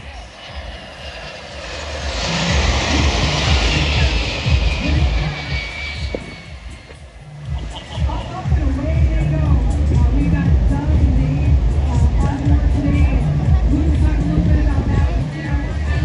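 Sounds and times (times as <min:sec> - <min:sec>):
jet plane passing overhead: 0:00.0 - 0:16.0.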